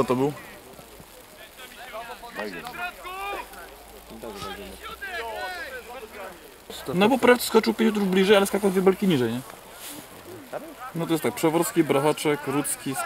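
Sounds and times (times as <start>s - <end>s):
distant people talking quietly: 0.0s - 13.0s.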